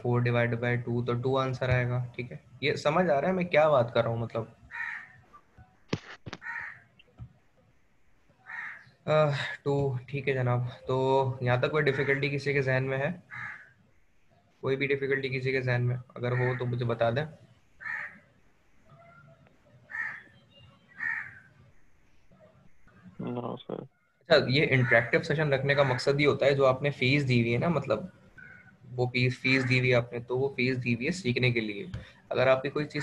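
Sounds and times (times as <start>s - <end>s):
bird calling: 4.7s - 5.5s, 6.3s - 7.2s, 8.4s - 9.1s, 13.3s - 13.8s, 17.8s - 18.2s, 18.9s - 21.6s, 28.3s - 28.9s
harsh bird call: 18.9s - 21.6s.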